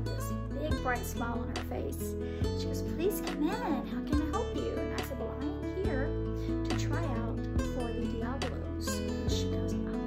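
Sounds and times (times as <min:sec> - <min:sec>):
strummed acoustic guitar chords: 0:00.0 - 0:10.0
woman's voice: 0:00.0 - 0:10.0.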